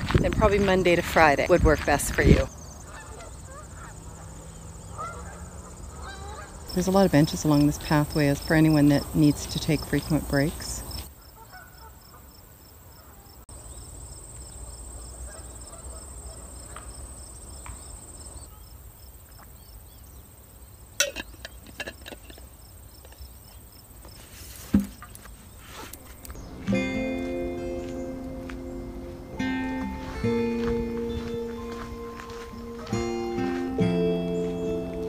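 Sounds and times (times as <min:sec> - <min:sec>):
crickets trilling: 0:02.5 - 0:24.3
acoustic guitar music: 0:26.4 - 0:35.0.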